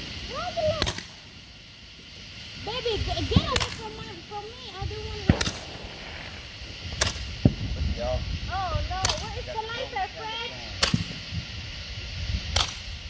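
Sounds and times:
roman candle firing pops: 5.2 - 7.6, 9.0 - 9.3, 10.8 - 11.2, 12.5 - 12.9.

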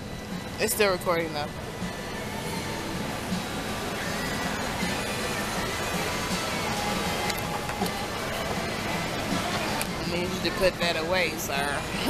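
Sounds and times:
music playing: 0.0 - 12.0.

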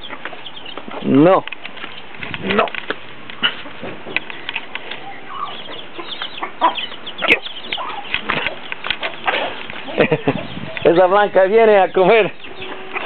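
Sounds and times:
chicks peeping: 0.0 - 13.0
hen clucking: 0.0 - 13.0.

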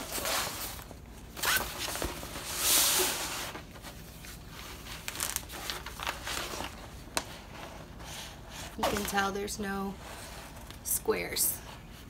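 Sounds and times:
paper sheet rustling and crinkling: 0.0 - 8.0, 8.8 - 10.7.

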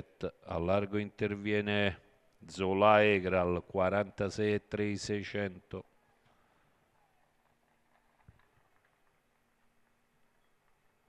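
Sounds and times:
faint steady hum and hiss: 0.0 - 11.0.

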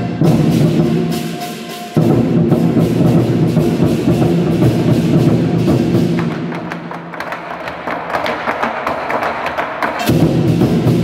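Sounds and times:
large barrel drums beating: 0.0 - 11.0.

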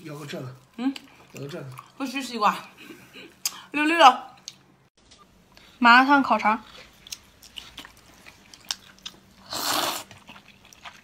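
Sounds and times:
noisy mouthful eating: 6.6 - 11.0.

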